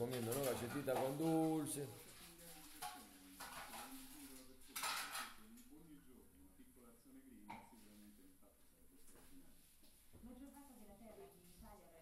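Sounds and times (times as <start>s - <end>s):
scrape or rustle on table: 2.0s - 5.3s.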